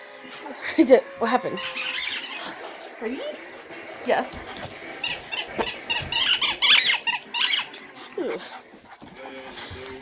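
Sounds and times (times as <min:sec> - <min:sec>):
dogs making high-pitched play noises: 0:00.0 - 0:10.0
dog whining: 0:01.2 - 0:02.5.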